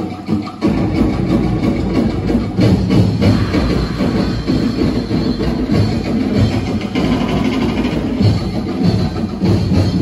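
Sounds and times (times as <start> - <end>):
drum ensemble driving beat: 0.0 - 10.0.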